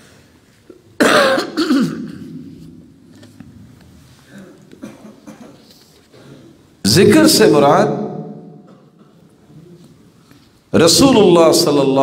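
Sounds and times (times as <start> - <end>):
man clearing his throat: 1.0 - 2.3, 4.3 - 6.7, 8.6 - 9.8.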